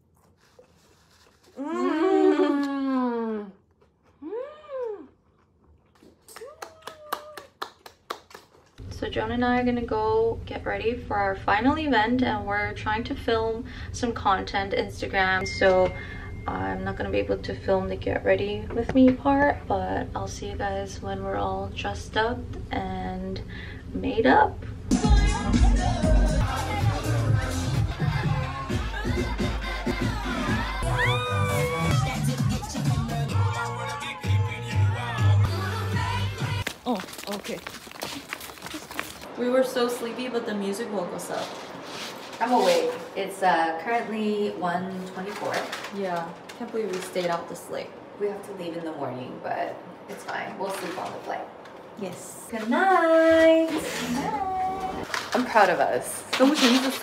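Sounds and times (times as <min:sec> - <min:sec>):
woman humming with delight: 0:01.6 - 0:03.6, 0:04.2 - 0:05.2
hand claps: 0:06.3 - 0:08.6
club dance music: 0:24.9 - 0:36.6
crowd shouting and cheering: 0:25.1 - 0:36.0.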